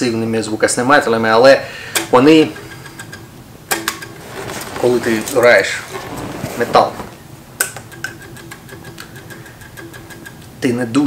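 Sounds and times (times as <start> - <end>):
man talking: 4.8 - 7.1.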